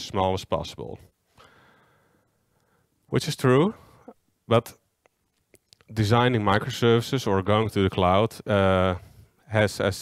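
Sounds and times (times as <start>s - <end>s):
faint breath on microphone: 1.3s - 3.0s.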